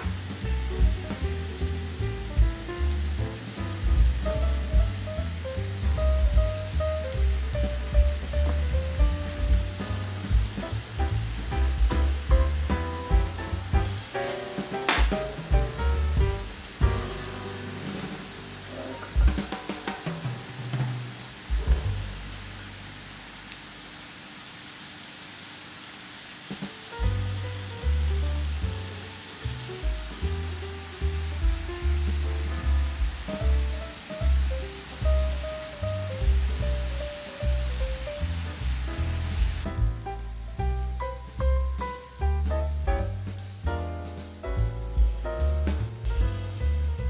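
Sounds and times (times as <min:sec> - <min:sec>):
background music: 0:00.0 - 0:22.5, 0:27.0 - 0:47.0
meat sizzling in a frying pan: 0:00.0 - 0:47.0.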